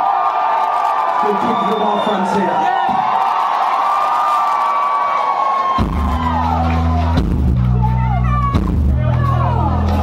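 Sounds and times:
crowd cheering and whooping: 0.0 - 10.0
rock band deep bass notes: 5.8 - 10.0.

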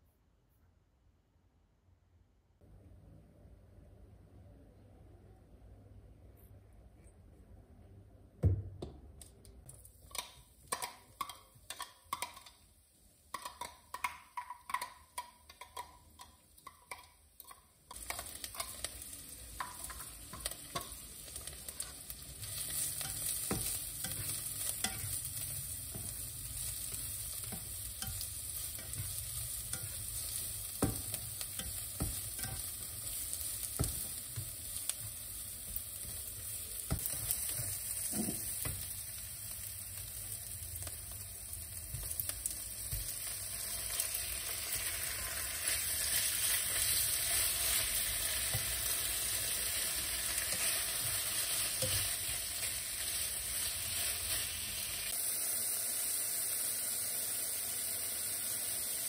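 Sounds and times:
onion and garlic sizzling in pan: 9.6 - 59.0.

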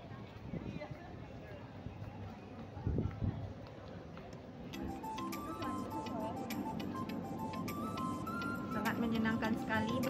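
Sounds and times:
station concourse hubbub: 0.0 - 10.0
music with ticking beat: 4.8 - 10.0.

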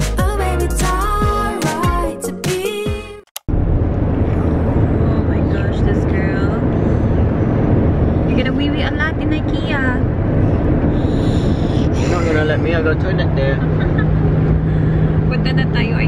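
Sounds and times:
car cabin road rumble: 3.4 - 16.0.

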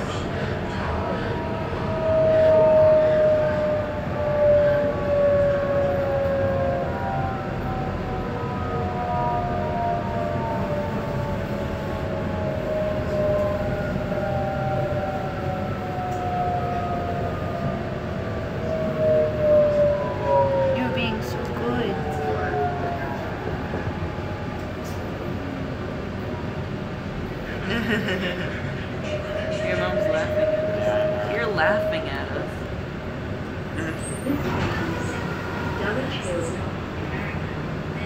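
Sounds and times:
train carriage rumble: 0.0 - 38.0.

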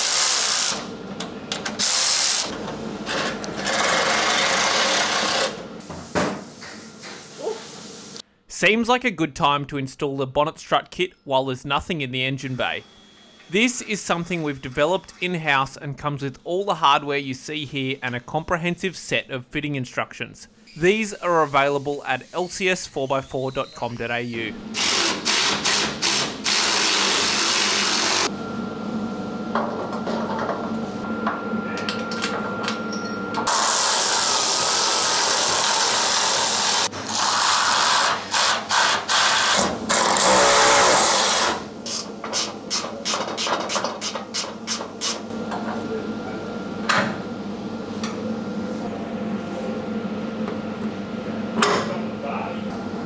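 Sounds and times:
electric ratchet driving bolts: 0.0 - 0.9, 1.6 - 2.5, 3.1 - 5.6, 24.7 - 28.3.

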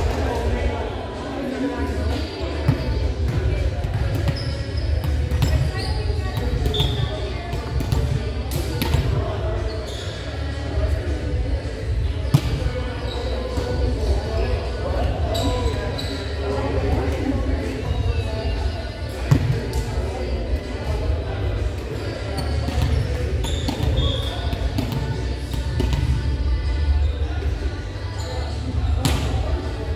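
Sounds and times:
players chatting: 0.0 - 29.9
volleyballs smacking and bouncing: 2.7 - 5.7, 6.4 - 9.3, 21.6 - 26.3
sneaker squeaks: 4.0 - 8.1, 8.8 - 10.5, 13.0 - 13.8, 15.0 - 16.5, 22.0 - 27.3.

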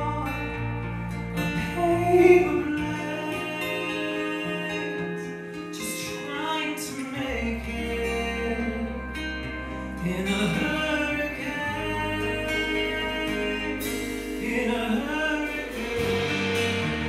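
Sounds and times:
man singing into a microphone: 0.0 - 17.0
deep bass note: 7.6 - 17.0
live band music: 7.9 - 17.0.

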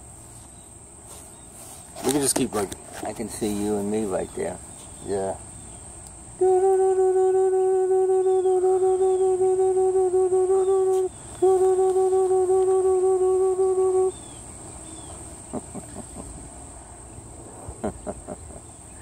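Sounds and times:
person humming high note: 6.3 - 14.4.

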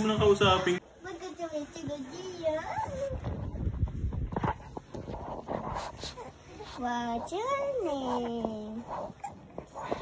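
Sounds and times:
baby cooing: 7.9 - 10.0.

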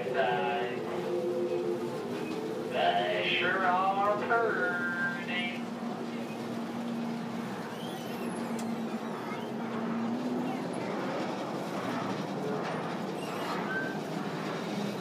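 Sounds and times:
train rumbling on track: 0.0 - 15.0.

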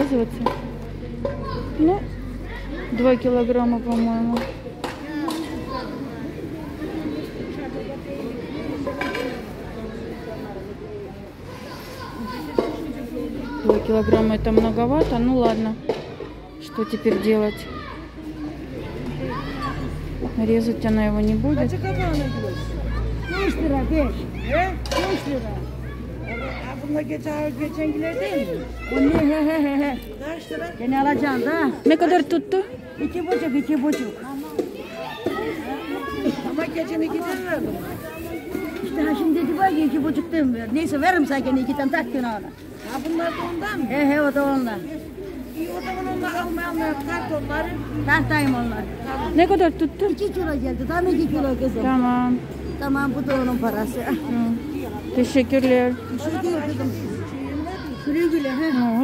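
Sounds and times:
crowd chatter: 0.0 - 59.0.

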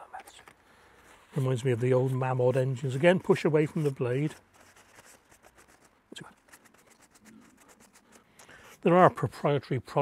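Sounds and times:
paper towel wiping a blade: 1.3 - 9.0.

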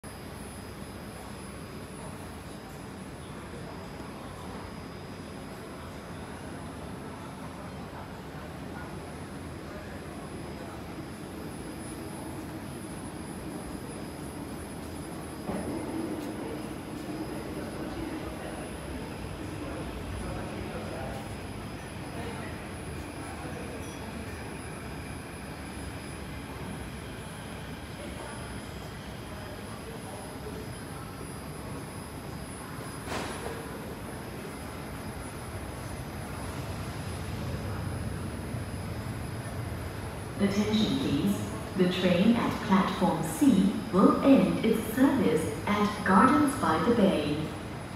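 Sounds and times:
faint high whine: 0.0 - 47.9
ventilation and machinery hum: 0.0 - 47.9
murmur of voices: 1.7 - 47.9.

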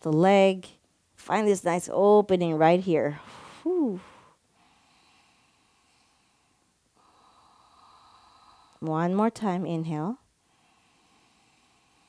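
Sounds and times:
faint breathing: 3.2 - 8.9, 10.4 - 12.0.

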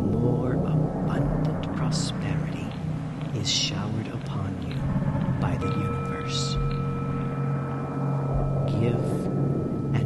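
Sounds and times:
low steady hum: 0.0 - 10.0
person whispering: 3.4 - 4.8, 5.4 - 6.8, 8.7 - 9.2.

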